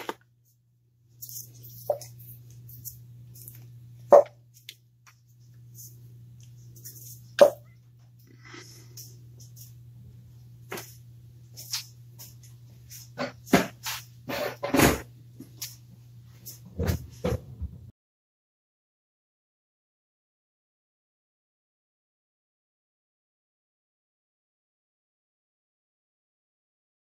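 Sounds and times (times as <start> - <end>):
faint low hum: 0.0 - 17.9.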